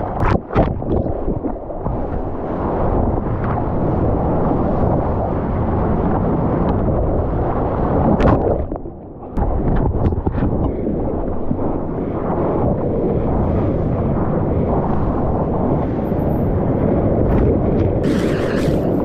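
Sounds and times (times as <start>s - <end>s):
surf churning and rushing: 0.0s - 19.0s
wind: 0.0s - 19.0s.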